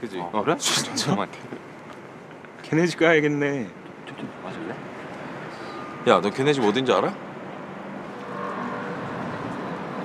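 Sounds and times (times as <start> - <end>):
distant city traffic hum: 0.0 - 10.0.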